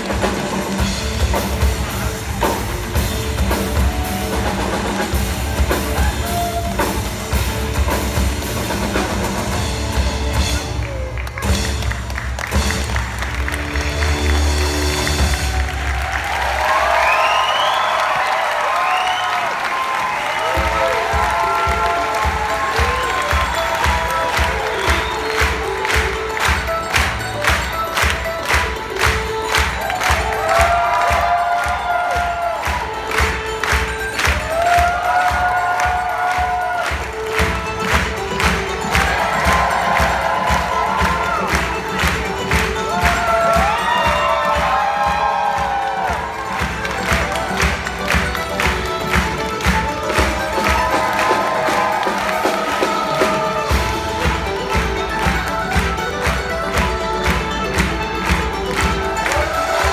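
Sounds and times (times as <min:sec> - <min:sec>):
cheering voices: 0:00.0 - 0:09.4, 0:10.2 - 0:59.9
audience clapping in time: 0:00.0 - 0:59.9
loud drum-driven show music: 0:00.0 - 0:59.9.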